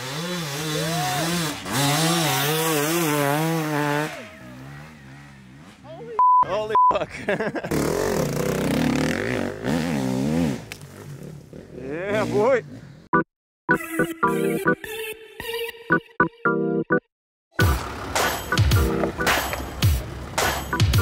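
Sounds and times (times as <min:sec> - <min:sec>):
dirt bike engine revving: 0:00.0 - 0:05.9, 0:07.6 - 0:13.1
short high beeps: 0:06.2 - 0:06.9.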